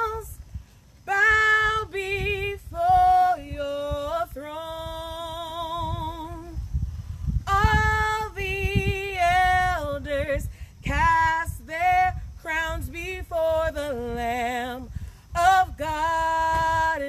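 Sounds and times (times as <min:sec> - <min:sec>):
woman singing unaccompanied: 0:00.0 - 0:17.0
singer breathing: 0:10.5 - 0:10.8.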